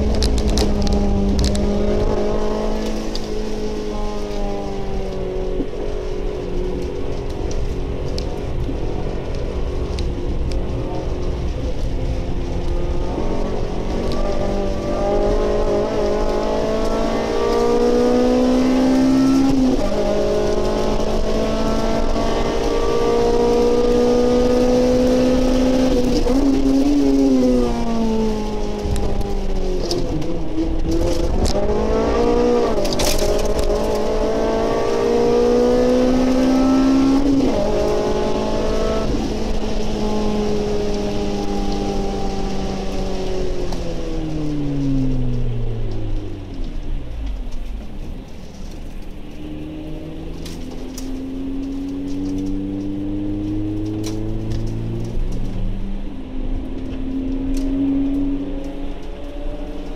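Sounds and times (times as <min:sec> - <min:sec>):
car engine revving: 0:00.0 - 0:59.9
rain and wet road noise: 0:00.0 - 0:59.9.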